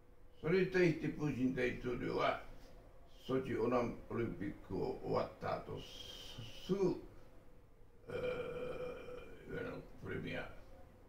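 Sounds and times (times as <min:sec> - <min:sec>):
man speaking: 0:00.4 - 0:02.5, 0:03.1 - 0:07.1, 0:08.1 - 0:10.6
man's voice hesitation sound: 0:03.2 - 0:07.1, 0:08.1 - 0:10.6.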